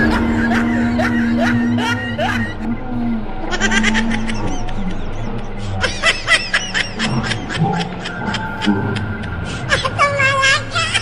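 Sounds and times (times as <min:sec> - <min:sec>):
high-pitched cackling laughter: 0:00.0 - 0:02.7, 0:03.4 - 0:11.0
low background drone: 0:00.0 - 0:11.0.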